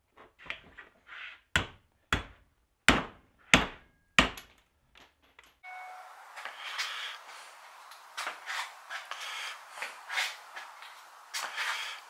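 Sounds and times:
steady hiss with faint whine: 5.6 - 12.0.

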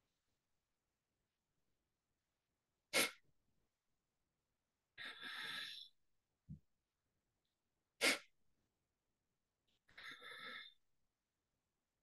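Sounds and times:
sharp exhalation through nose: 2.9 - 3.2, 8.0 - 8.3.

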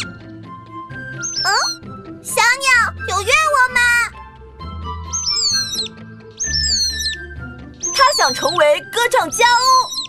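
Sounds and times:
soft background music: 0.0 - 10.0
cartoon bird whistling chirps: 1.1 - 1.8, 5.0 - 10.0.

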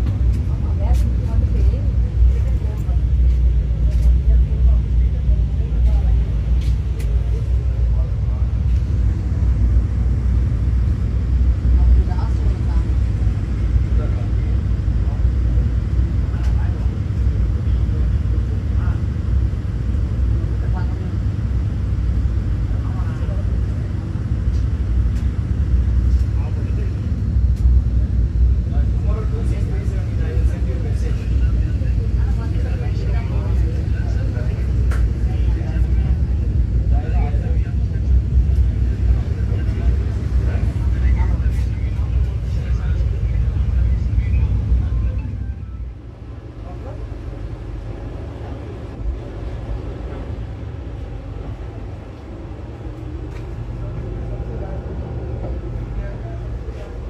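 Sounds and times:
electric train rumble: 0.0 - 57.0
people talking indistinctly: 0.0 - 57.0.

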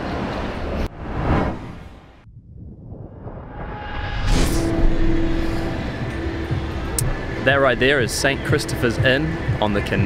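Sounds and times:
street noise: 0.0 - 2.2, 3.5 - 10.0.

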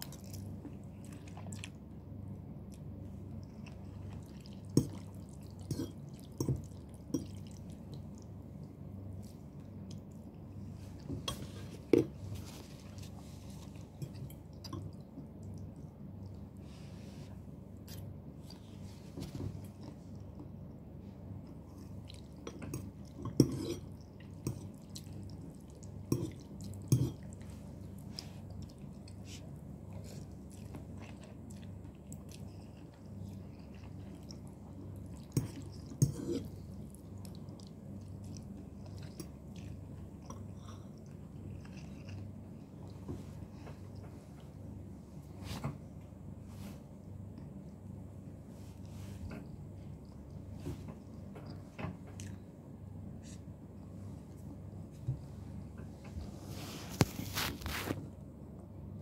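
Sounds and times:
steady low hum: 0.0 - 59.0
person chewing and slurping noodles: 3.3 - 8.3, 21.6 - 43.0.

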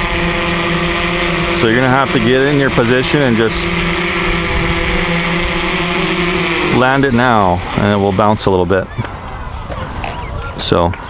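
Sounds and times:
drone motors humming: 0.0 - 10.8.

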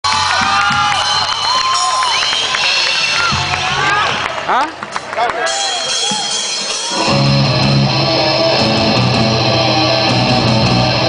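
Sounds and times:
audience cheering and screaming: 0.0 - 4.5, 5.3 - 11.0
rock band playing: 5.5 - 11.0.

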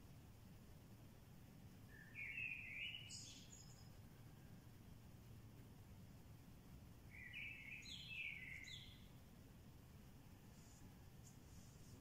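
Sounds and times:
steady low hum: 0.0 - 12.0
bird chirping: 1.8 - 5.1, 7.0 - 9.4.

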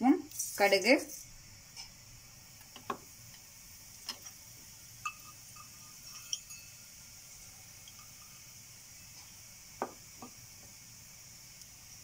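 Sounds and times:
oil sizzling: 0.0 - 12.0
mustard seeds popping in oil: 1.2 - 12.0
metallic ring from steel pan: 5.0 - 7.0.

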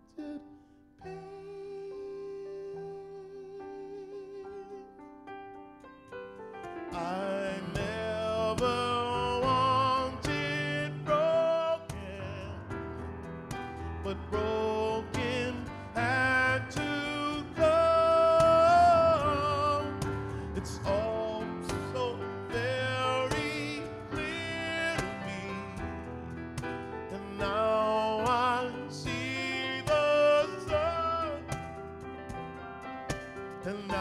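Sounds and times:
man singing jazz with vibrato: 0.0 - 5.0, 6.8 - 31.8, 33.5 - 34.0
piano chords: 0.0 - 34.0.

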